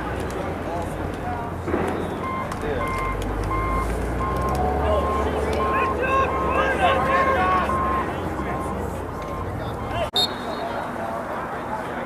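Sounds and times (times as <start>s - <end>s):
reversing alarm beeping: 2.1s - 10.4s.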